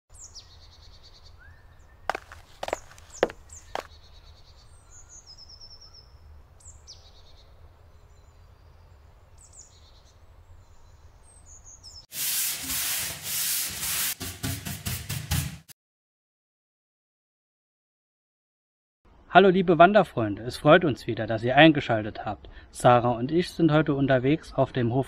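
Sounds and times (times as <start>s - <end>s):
birds chirping: 0.1s - 12.0s.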